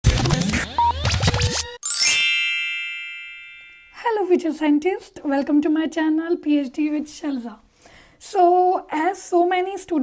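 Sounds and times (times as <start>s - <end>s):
bright chime ringing: 1.8s - 4.1s.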